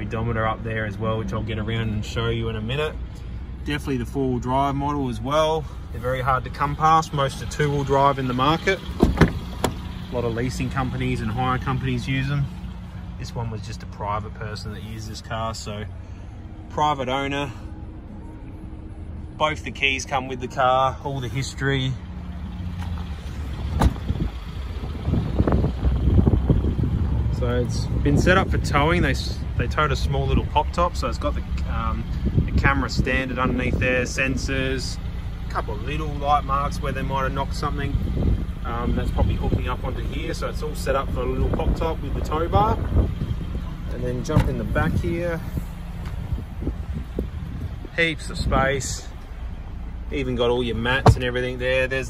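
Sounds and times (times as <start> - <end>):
low rumbling handling noise: 6.1 - 34.8, 35.5 - 52.0
car door latch click: 9.0 - 9.8, 23.8 - 24.1, 51.0 - 51.3
wind noise on microphone: 23.4 - 30.5, 37.9 - 39.9, 41.3 - 49.0
wind on microphone: 23.6 - 29.5
soft handling knocks: 51.0 - 51.4.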